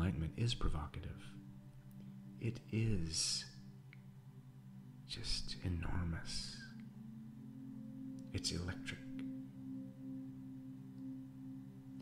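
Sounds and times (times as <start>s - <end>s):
low meditative drone: 0.0s - 12.0s.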